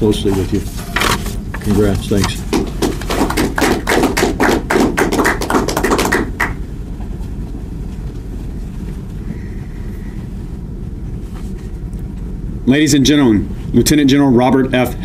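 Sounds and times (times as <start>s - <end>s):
low room hum: 0.0s - 15.0s
small audience clapping: 2.4s - 6.6s.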